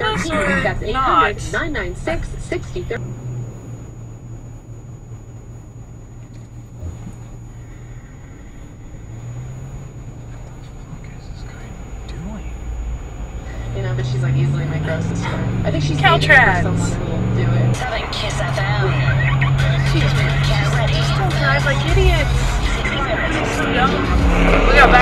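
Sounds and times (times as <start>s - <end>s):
car engine idling: 0.0s - 25.0s.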